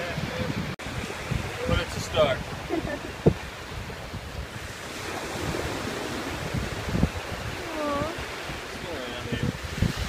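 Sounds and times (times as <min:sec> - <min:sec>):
small surf washing on beach: 0:00.0 - 0:10.0
wind rumbling on microphone: 0:00.0 - 0:10.0.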